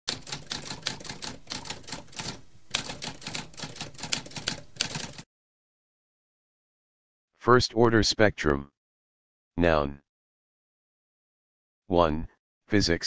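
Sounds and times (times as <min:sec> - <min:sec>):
typewriter keys clicking: 0:00.1 - 0:05.2.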